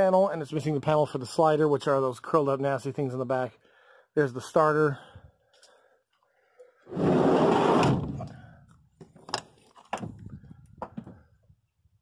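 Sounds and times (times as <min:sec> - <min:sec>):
rushing scrape: 0:06.9 - 0:08.2.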